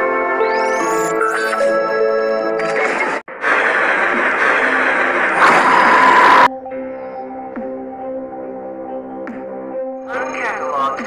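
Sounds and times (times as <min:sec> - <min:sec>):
rushing noise effect: 0:03.3 - 0:06.5.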